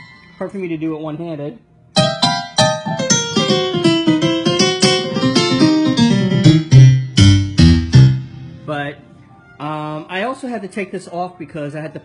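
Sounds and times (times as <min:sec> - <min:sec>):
digital piano notes: 0:01.9 - 0:09.0.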